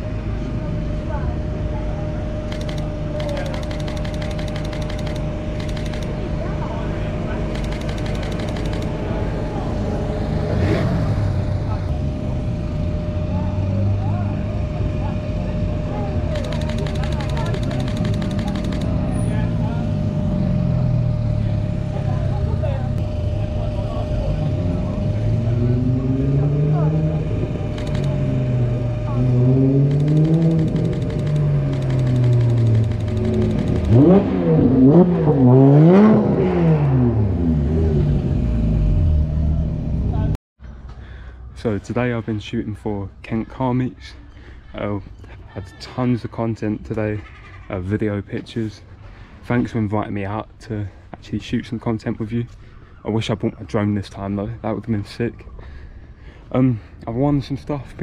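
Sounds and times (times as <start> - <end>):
car engines revving: 0.0 - 40.4
cars driving past: 0.0 - 42.1.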